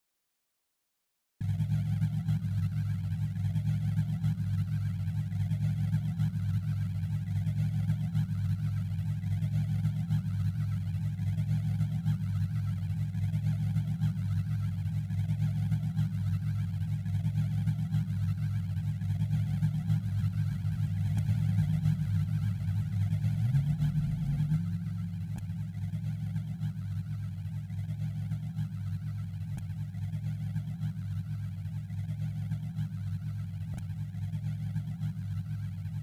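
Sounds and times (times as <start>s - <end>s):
low electronic hum: 1.4s - 36.0s.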